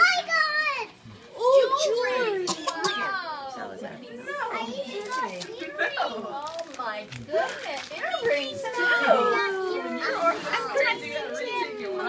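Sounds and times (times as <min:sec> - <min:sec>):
adults and children talking: 0:00.0 - 0:12.0.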